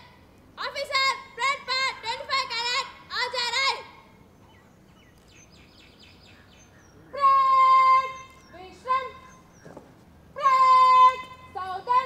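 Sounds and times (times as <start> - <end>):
person shouting commands: 7.0 - 9.3, 10.4 - 12.0.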